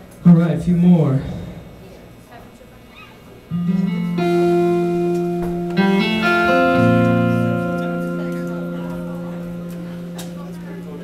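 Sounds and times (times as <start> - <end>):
room murmur: 0.0 - 11.0
electric guitar picking notes: 3.5 - 11.0.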